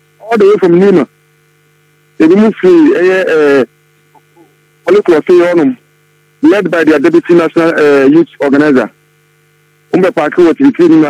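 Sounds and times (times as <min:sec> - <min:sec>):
steady hum: 0:00.0 - 0:11.0
man speaking: 0:00.2 - 0:01.1, 0:02.2 - 0:05.8, 0:06.4 - 0:08.9, 0:09.9 - 0:11.0.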